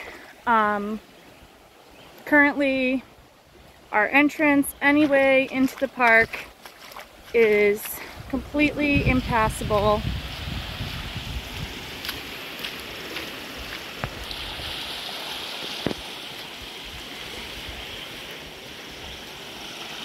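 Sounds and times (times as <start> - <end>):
water rushing across a road: 0.0 - 20.0.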